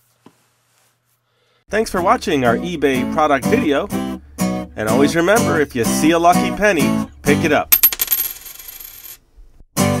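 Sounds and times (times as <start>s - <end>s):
coin dropping and ringing: 7.7s - 9.2s.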